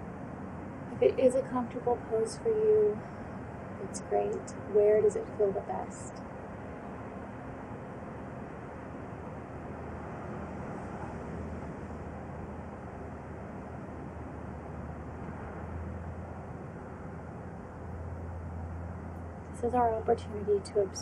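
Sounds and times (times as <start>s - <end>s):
low outdoor rumble: 0.0s - 21.0s.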